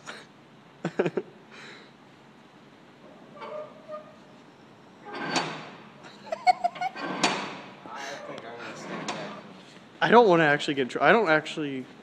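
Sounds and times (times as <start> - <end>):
people laughing: 6.1 - 7.0
door knocker clanking on metal door: 6.9 - 7.7.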